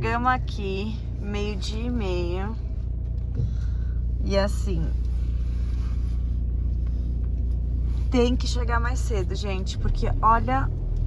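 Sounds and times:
car cabin rumble while idling: 0:00.0 - 0:11.0.

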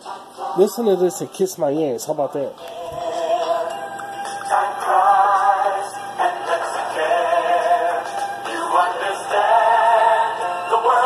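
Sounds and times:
song with long held notes: 0:02.6 - 0:11.0.

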